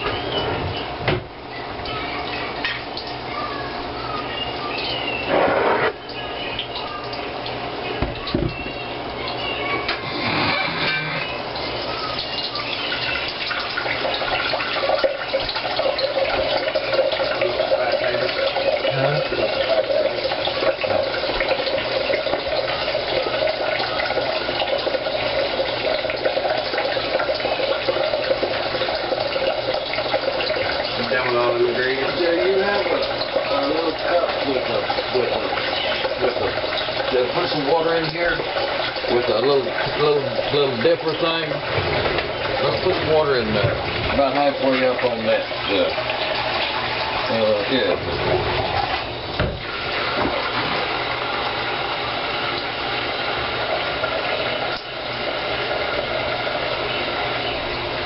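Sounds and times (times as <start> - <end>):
tap water running into sink: 0.0 - 58.0.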